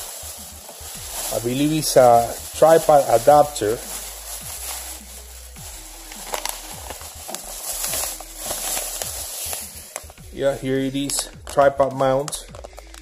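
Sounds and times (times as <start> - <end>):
packing wrap crinkling: 0.0 - 13.0.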